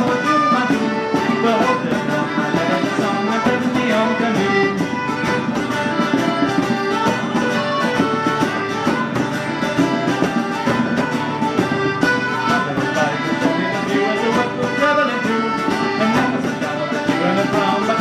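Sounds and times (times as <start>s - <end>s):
accordion melody: 0.0s - 18.0s
percussion beat: 0.0s - 18.0s
strummed acoustic guitar: 0.0s - 18.0s.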